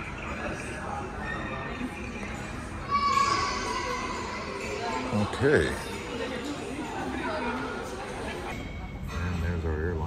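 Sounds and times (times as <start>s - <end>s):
large room ambience: 0.0s - 10.0s.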